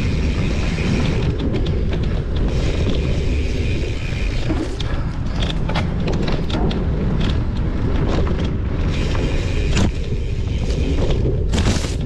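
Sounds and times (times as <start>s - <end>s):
bike knocks and rattles: 0.0s - 12.0s
bike tyre noise: 0.0s - 12.0s
wind rumble on microphone: 0.0s - 12.0s.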